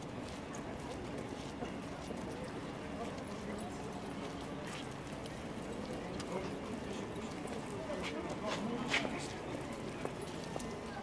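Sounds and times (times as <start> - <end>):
footsteps on stone paving: 0.0 - 11.0
murmur of people talking: 0.0 - 11.0.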